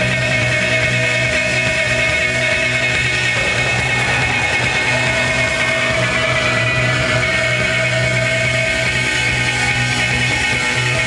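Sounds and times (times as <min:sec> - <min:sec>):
live rock band with electric guitars: 0:00.0 - 0:11.0.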